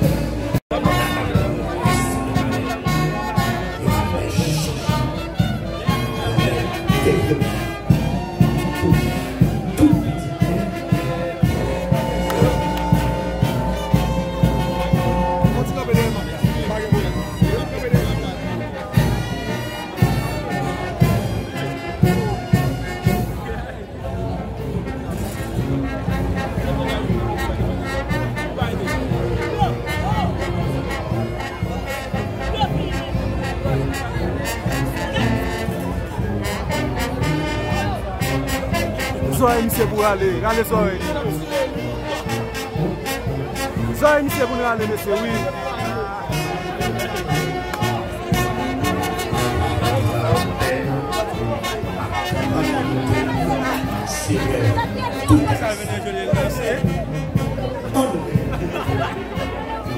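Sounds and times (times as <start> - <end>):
brass band music: 0.0 - 59.9
crowd noise: 0.0 - 59.9.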